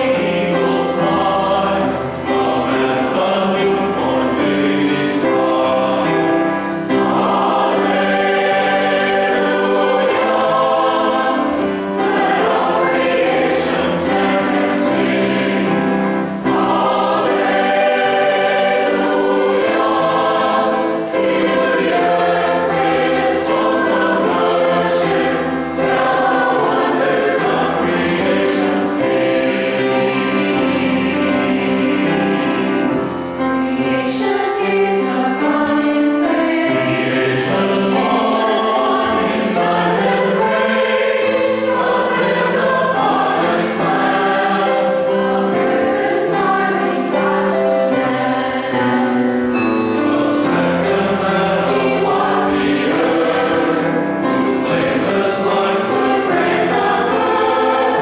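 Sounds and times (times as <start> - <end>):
mixed choir singing: 0.0 - 58.0.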